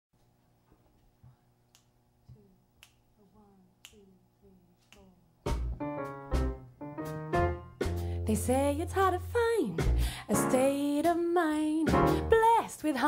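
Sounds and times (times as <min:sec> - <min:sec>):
finger snaps: 0:01.7 - 0:03.1, 0:03.8 - 0:04.2, 0:04.8 - 0:05.8
drums: 0:05.5 - 0:08.5, 0:09.6 - 0:11.2, 0:11.8 - 0:12.5
piano chords: 0:05.7 - 0:08.4, 0:11.8 - 0:12.5.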